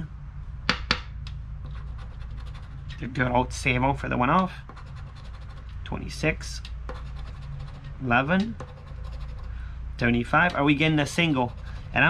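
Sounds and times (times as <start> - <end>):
coin scraping scratch ticket: 1.6 - 3.0, 4.6 - 5.8, 6.9 - 9.6, 11.0 - 12.0.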